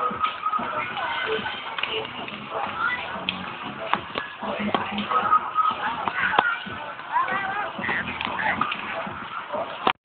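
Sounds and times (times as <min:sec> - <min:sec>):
children chattering and calling: 0:00.6 - 0:09.2.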